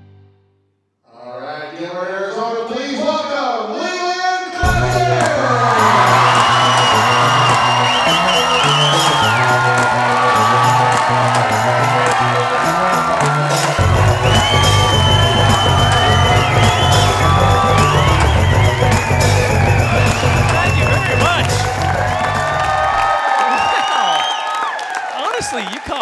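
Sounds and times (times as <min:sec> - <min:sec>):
upbeat walk-on music: 0:04.6 - 0:23.1
audience cheering and clapping: 0:04.6 - 0:26.0.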